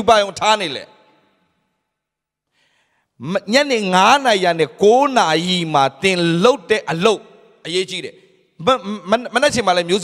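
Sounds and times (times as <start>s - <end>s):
faint intake of breath: 2.4s - 3.2s.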